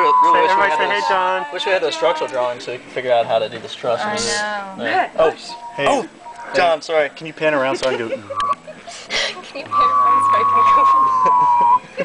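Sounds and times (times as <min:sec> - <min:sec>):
steady high-pitched tone: 0:00.0 - 0:02.3, 0:05.2 - 0:06.9, 0:09.6 - 0:12.0.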